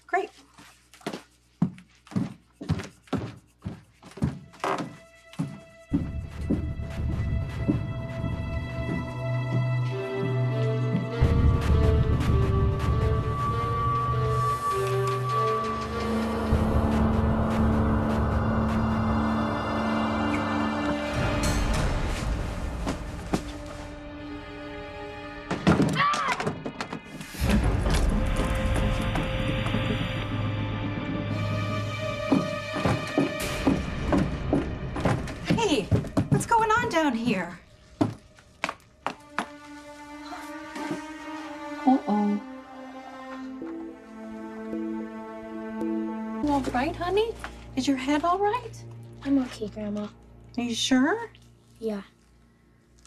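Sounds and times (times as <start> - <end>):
footsteps on wooden stairs: 1.0 - 11.5, 27.8 - 37.2, 37.8 - 39.7, 40.6 - 41.3
tense dramatic music: 5.0 - 53.0
thud and clatter of a fall: 25.5 - 29.9.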